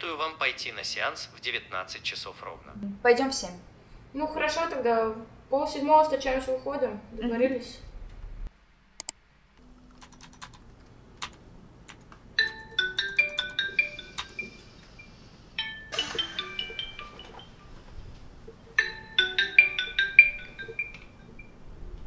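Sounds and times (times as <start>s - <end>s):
marimba phone ringtone: 12.4s - 21.6s.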